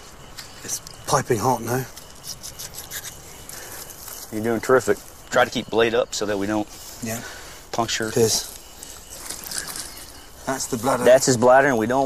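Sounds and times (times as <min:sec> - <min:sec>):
faint rustling and handling noise: 0:00.0 - 0:05.7, 0:06.4 - 0:11.2
man speaking: 0:00.6 - 0:02.0, 0:04.3 - 0:08.6, 0:10.4 - 0:12.0.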